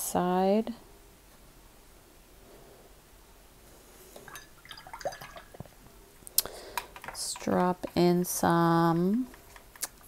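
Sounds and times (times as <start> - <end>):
paintbrush rinsed in water: 4.2 - 5.7.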